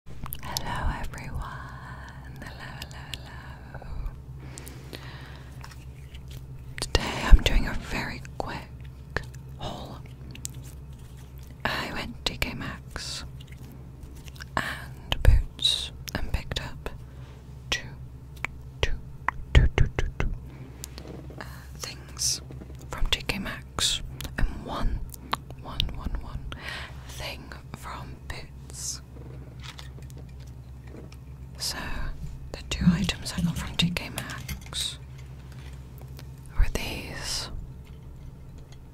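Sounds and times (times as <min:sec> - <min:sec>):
low steady hum: 0:00.1 - 0:38.9
close-up whispering: 0:00.4 - 0:04.1, 0:06.8 - 0:10.1, 0:11.6 - 0:13.3, 0:21.4 - 0:25.0, 0:31.6 - 0:35.0, 0:36.5 - 0:37.5
mouth clicks: 0:32.7 - 0:34.1.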